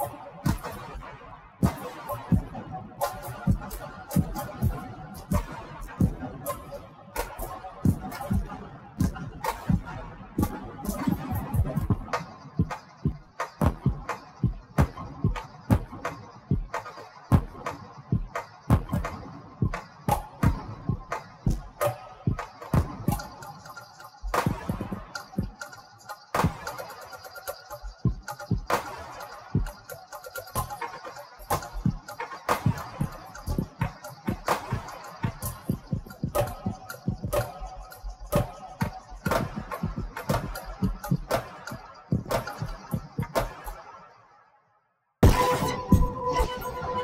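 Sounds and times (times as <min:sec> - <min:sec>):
breakbeat drum pattern: 0:00.0 - 0:43.9, 0:45.2 - 0:47.0.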